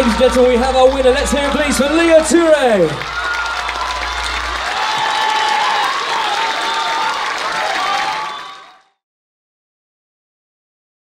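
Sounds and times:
crowd shouting: 0.0 - 8.9
audience clapping: 0.0 - 9.0.

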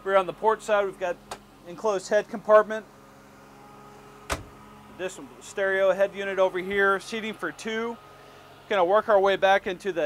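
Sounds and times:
door shutting knock: 4.3 - 4.5.

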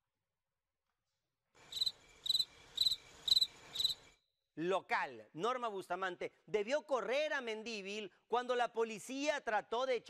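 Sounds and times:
cricket chirps: 1.6 - 4.2.

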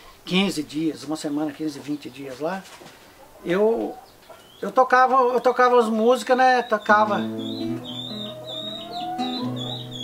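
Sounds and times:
birds chirping: 0.4 - 10.0
acoustic guitar played slowly: 6.8 - 10.0.

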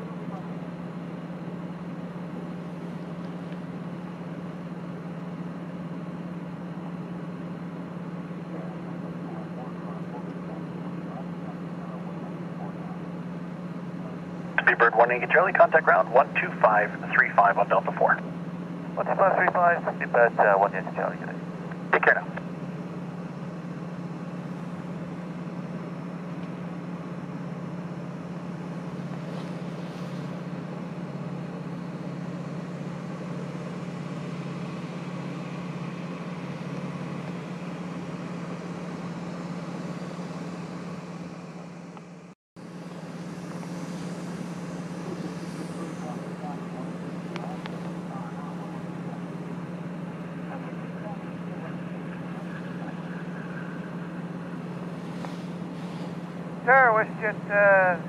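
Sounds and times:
jet engines at taxi power: 0.0 - 58.0.

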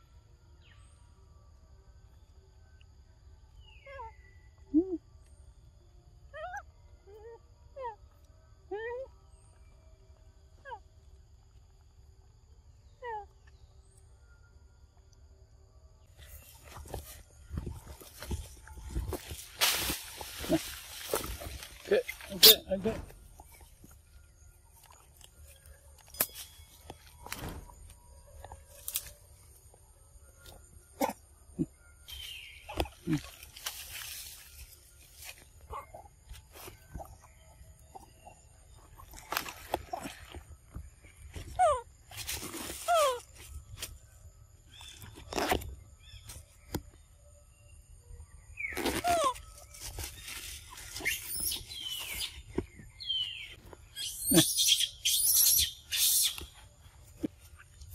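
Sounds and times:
rustling and scuffling: 16.2 - 24.1
clicks and rustles in leaves: 16.3 - 29.3, 32.1 - 35.6, 39.1 - 44.0, 48.6 - 52.9
monkey squeaky calls: 50.9 - 52.4, 54.0 - 56.4.

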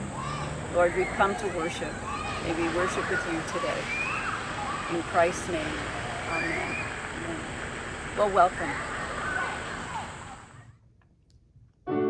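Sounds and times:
outdoor background hiss: 0.0 - 11.8.

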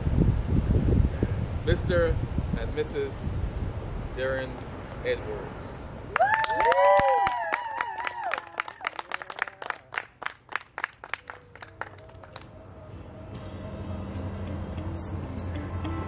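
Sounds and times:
high whooping cheer: 6.1 - 10.0
people clapping and cheering: 6.1 - 12.6
background music: 12.4 - 16.0.

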